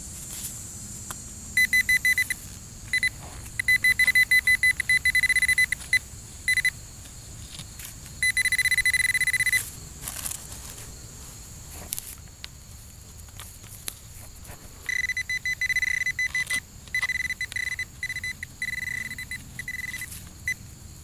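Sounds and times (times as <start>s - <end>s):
metal detector pinpointer beeping: 1.6s - 6.8s, 8.2s - 9.7s, 14.8s - 20.6s.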